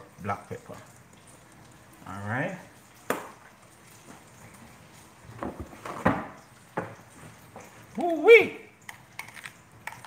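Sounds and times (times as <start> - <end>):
light knocks and clatters: 5.3 - 8.0.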